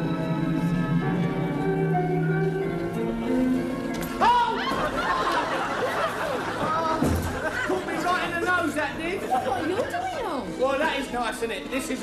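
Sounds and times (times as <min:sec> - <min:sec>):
people chattering: 0:04.4 - 0:12.0.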